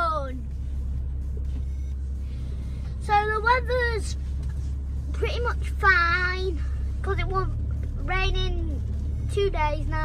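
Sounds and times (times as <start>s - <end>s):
vehicle engine and tyres rumble: 0.0s - 10.0s.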